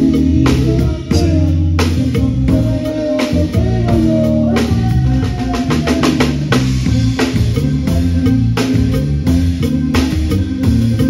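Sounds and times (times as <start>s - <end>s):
band playing: 0.0s - 11.0s
held bass notes: 0.0s - 11.0s.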